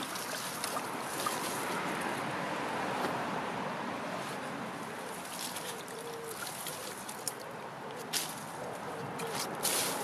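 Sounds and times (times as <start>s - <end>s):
brook water splashing and trickling: 0.0s - 2.3s, 5.0s - 7.6s.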